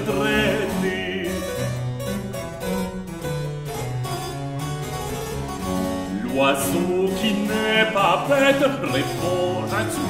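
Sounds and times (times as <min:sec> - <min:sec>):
harpsichord playing: 0:00.0 - 0:10.0
held bass line: 0:00.0 - 0:10.0.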